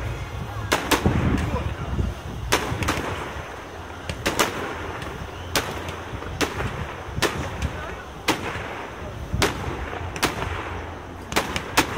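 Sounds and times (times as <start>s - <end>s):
fireworks bursting: 0.0s - 11.9s.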